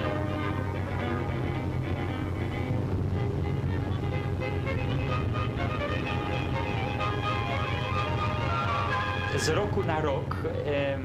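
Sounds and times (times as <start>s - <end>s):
music: 0.0s - 11.0s
vehicle engines rumbling: 0.0s - 11.0s.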